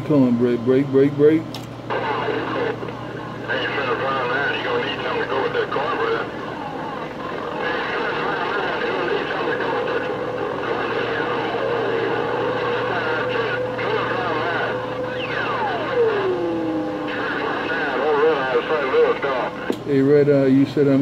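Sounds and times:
garbled radio stations: 0.5s - 21.0s
steady radio whistle: 1.9s - 19.7s
radio static: 1.9s - 20.2s.

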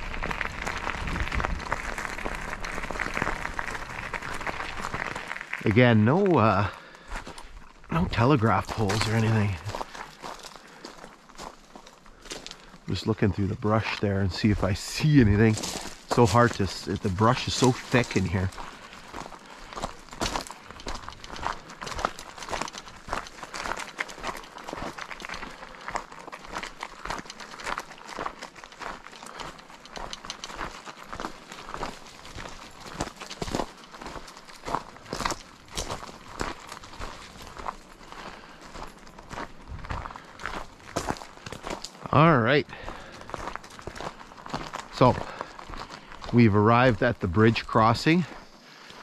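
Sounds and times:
crunching of gravel: 0.0s - 49.0s.

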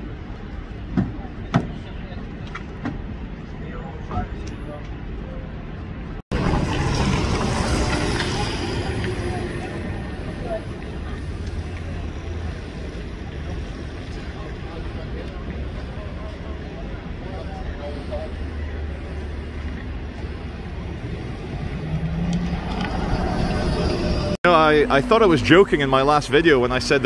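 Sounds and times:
street rumble and hiss: 0.0s - 27.0s.

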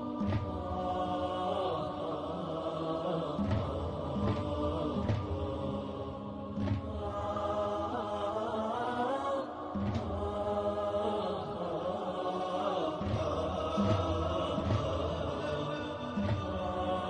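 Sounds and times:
person chanting melodically: 0.0s - 17.0s.

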